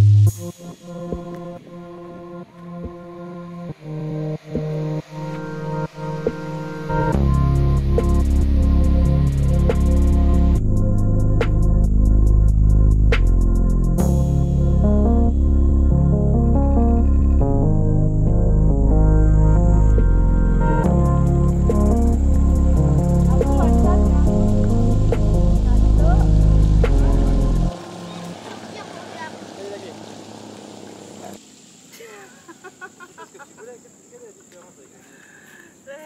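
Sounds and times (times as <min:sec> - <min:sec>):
instrumental music with heavy bass: 0:00.0 - 0:02.0, 0:02.8 - 0:27.8.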